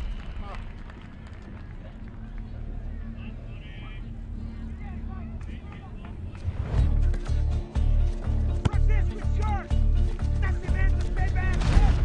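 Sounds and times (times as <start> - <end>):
low rumble of pitch ambience: 0.0 - 12.0
football players shouting: 8.5 - 12.0.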